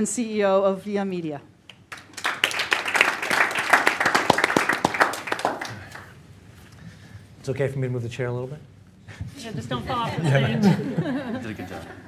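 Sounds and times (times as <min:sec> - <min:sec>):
audience applauding: 0:01.9 - 0:06.2.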